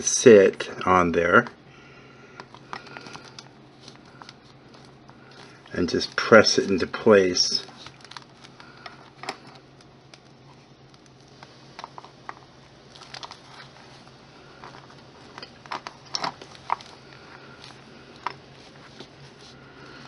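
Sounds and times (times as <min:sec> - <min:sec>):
low steady hum: 0:00.0 - 0:20.0.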